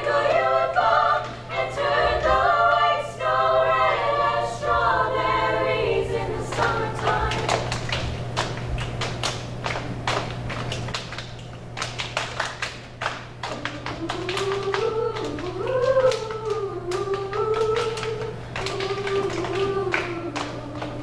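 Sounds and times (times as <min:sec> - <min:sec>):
women singing a melody: 0:00.0 - 0:07.7, 0:13.4 - 0:21.0
hands patting chests and clapping: 0:06.5 - 0:21.0.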